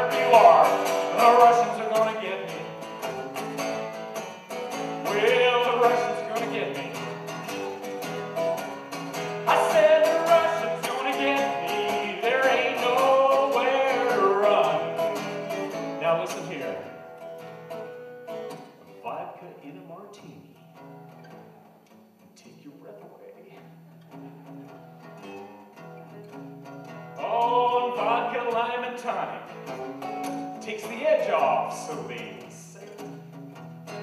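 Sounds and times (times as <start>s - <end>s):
man singing folk song: 0.0s - 17.2s, 18.3s - 20.7s, 27.0s - 34.0s
strummed acoustic guitar: 0.0s - 34.0s.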